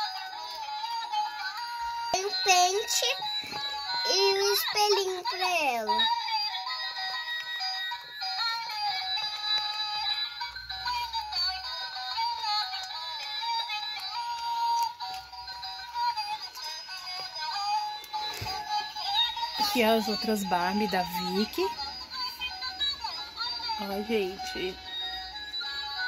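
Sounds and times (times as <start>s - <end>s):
toy electronic melody with synthetic voice: 0.0s - 26.0s.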